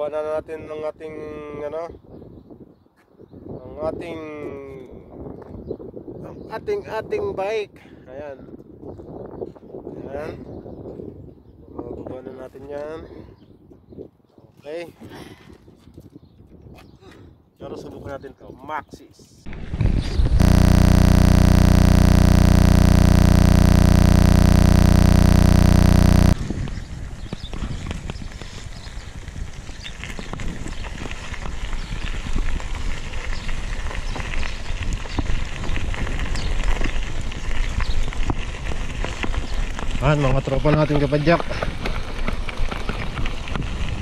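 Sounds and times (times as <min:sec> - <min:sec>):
loud unchanging noise: 0:19.5 - 0:26.4.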